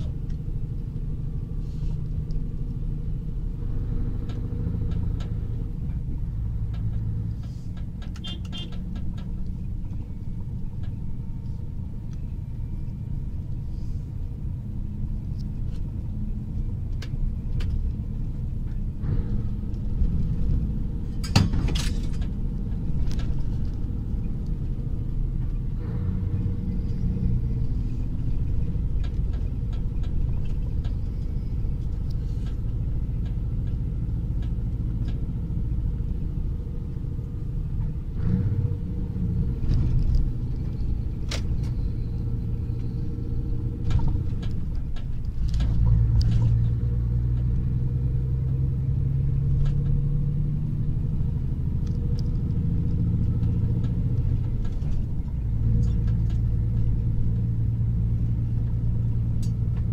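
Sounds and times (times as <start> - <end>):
truck engine and road noise: 0.0 - 59.9.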